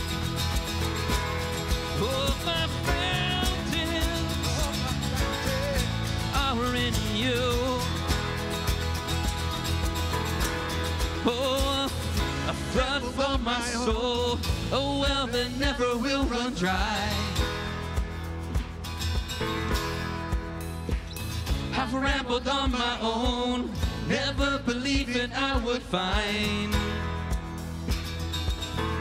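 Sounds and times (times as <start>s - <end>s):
drums with steady beat: 0.0s - 29.0s
electric guitar: 0.0s - 29.0s
keyboard: 0.0s - 29.0s
strummed acoustic guitar: 0.0s - 29.0s
person singing: 1.9s - 8.4s, 11.1s - 17.7s, 21.6s - 27.1s.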